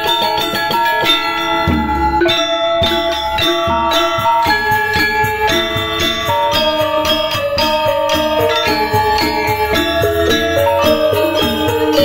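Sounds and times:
deep gamelan notes: 0:00.0 - 0:12.0
metallophones struck with mallets: 0:00.0 - 0:12.0.

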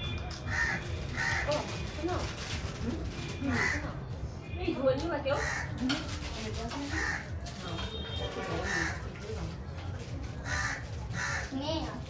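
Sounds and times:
crow cawing: 0:00.5 - 0:01.6, 0:03.5 - 0:03.9, 0:05.3 - 0:05.8, 0:06.9 - 0:07.4, 0:08.6 - 0:09.1, 0:10.4 - 0:11.6.

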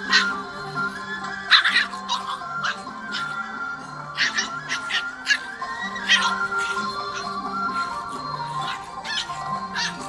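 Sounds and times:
background music with held notes: 0:00.0 - 0:10.0
dogs yelping and barking: 0:00.0 - 0:10.0.

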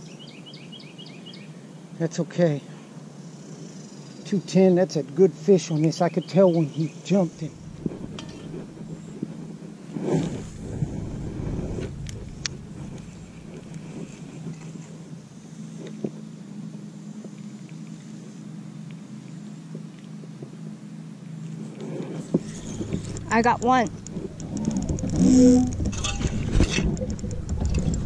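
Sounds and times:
low mechanical hum: 0:00.0 - 0:28.0
rumble: 0:07.3 - 0:18.4, 0:21.4 - 0:28.0
faint clicks: 0:21.8 - 0:28.0.

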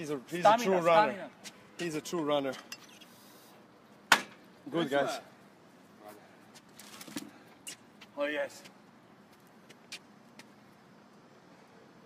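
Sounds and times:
tennis balls struck and bouncing: 0:04.1 - 0:04.4.

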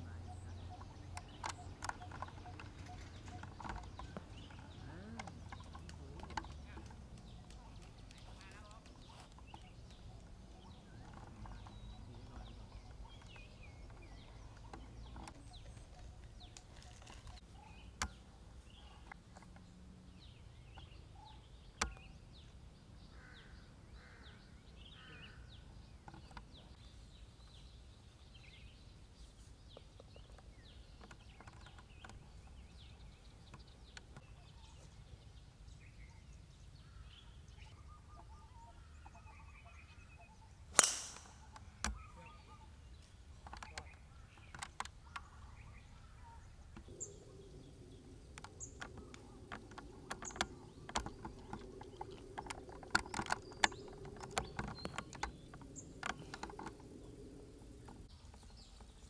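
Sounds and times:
birds calling: 0:00.0 - 0:59.0
golf club striking ball: 0:40.7 - 0:41.4
small sharp clicks: 0:40.8 - 0:42.0, 0:43.0 - 0:45.3, 0:48.3 - 0:56.9.

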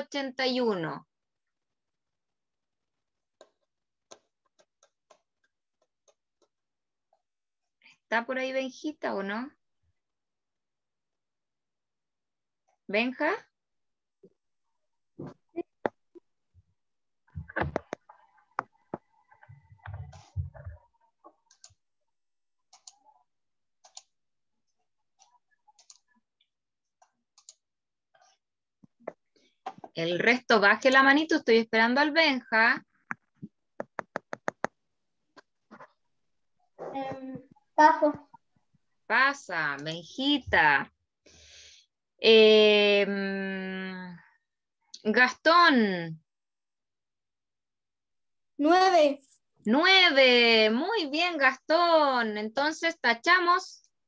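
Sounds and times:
faint irregular clicks: 0:03.3 - 0:07.3, 0:22.6 - 0:23.2, 0:23.8 - 0:24.2, 0:25.2 - 0:29.9, 0:33.0 - 0:35.9.

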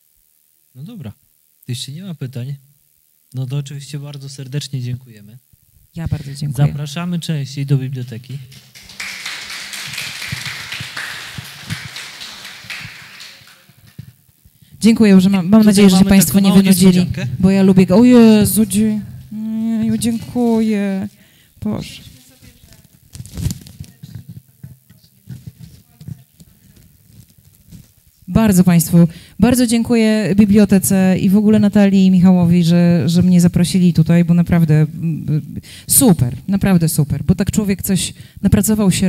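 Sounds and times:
audience applauding: 0:08.5 - 0:14.0
handheld microphone bumps and rubs: 0:21.9 - 0:28.3.

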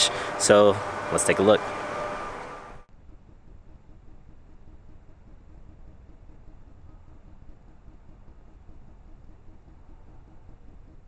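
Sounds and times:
faint background rumble and hiss: 0:02.9 - 0:11.0.

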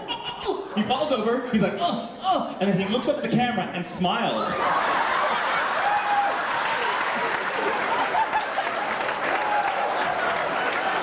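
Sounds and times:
audience applauding: 0:04.6 - 0:11.0.

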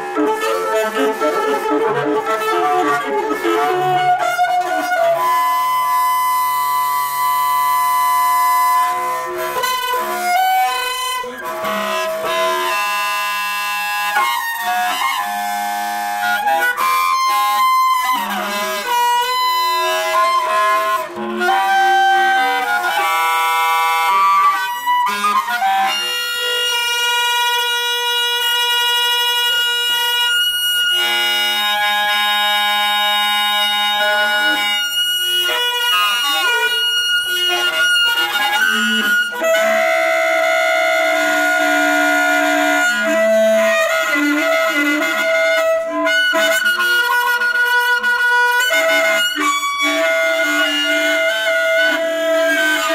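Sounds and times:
alto saxophone: 0:00.0 - 0:52.9
clarinet: 0:00.0 - 0:52.9.

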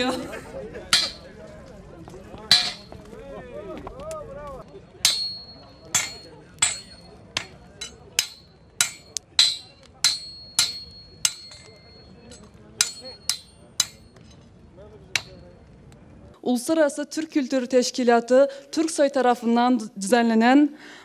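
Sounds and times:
hammer striking steel on anvil: 0:00.9 - 0:01.3, 0:02.5 - 0:03.0, 0:05.0 - 0:14.4, 0:15.2 - 0:15.5.

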